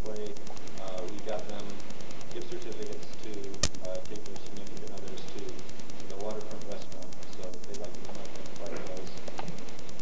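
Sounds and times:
young man speaking: 0.0s - 9.3s
sharp click: 0.0s - 10.0s.

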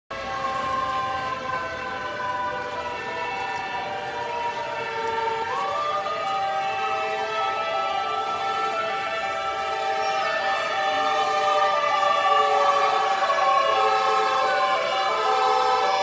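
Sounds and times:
emergency vehicle sirens: 0.1s - 16.0s.

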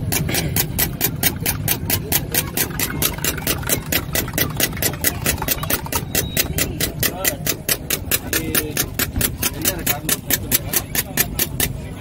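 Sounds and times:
eggs beaten in a bowl: 0.0s - 12.0s.

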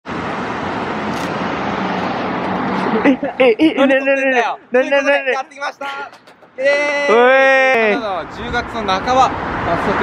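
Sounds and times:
road traffic hiss: 0.1s - 10.0s.

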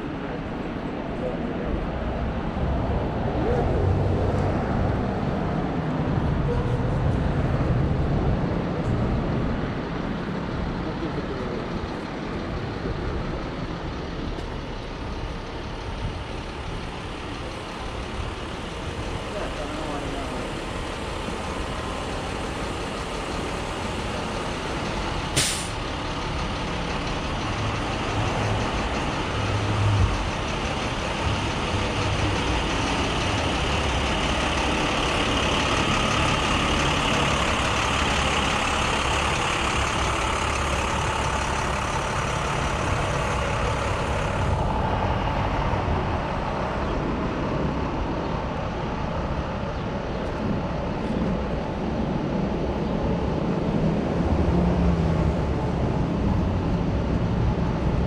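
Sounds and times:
city street traffic: 0.0s - 58.0s
truck diesel engine running: 1.7s - 58.0s
short sharp hiss: 25.4s - 25.8s.

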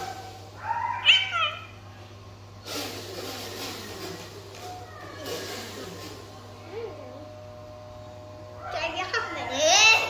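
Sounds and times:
steady low hum: 0.0s - 10.0s.

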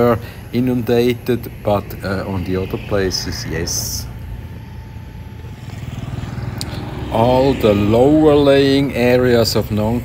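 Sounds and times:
engine rumbling: 0.0s - 10.0s.

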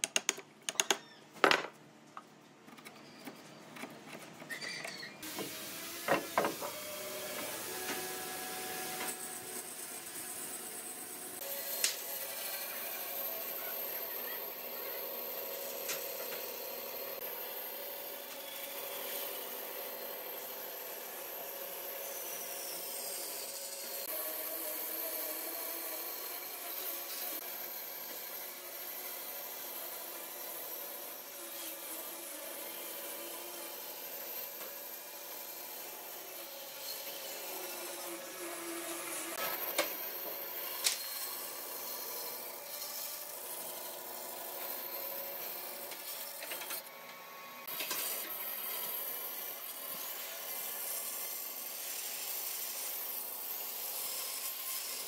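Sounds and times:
band saw cutting log: 2.7s - 55.0s.

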